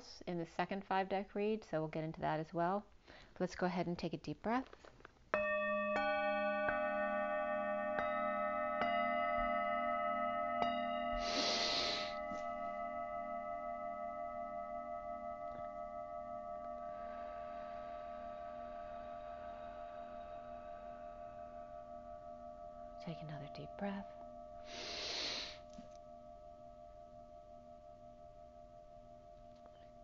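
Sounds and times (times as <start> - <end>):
singing bowl ringing: 5.3 - 30.0
deep breath in: 11.2 - 12.3, 24.6 - 25.7
long slow breath out: 11.2 - 12.3, 24.6 - 25.7.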